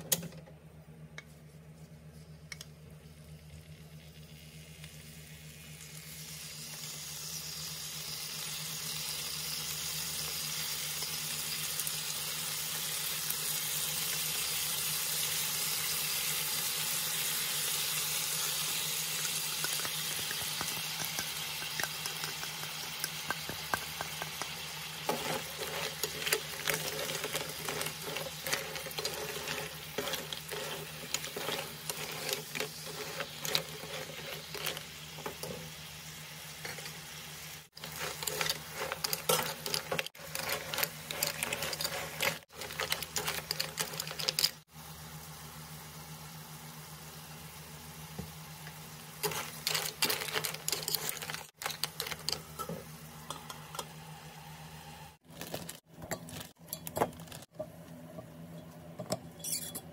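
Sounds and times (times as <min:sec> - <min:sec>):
frying hiss in a wok: 0:02.1 - 0:59.0.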